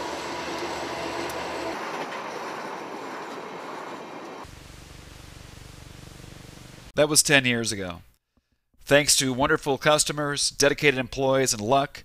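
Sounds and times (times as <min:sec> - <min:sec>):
freight train passing: 0:00.0 - 0:04.5.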